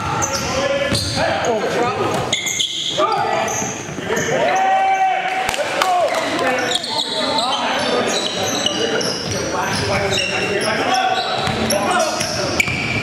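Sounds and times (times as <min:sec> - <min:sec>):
sneakers squeaking on gym floor: 0:00.0 - 0:04.8, 0:06.3 - 0:13.0
players calling out: 0:00.0 - 0:13.0
basketball bouncing: 0:11.4 - 0:13.0.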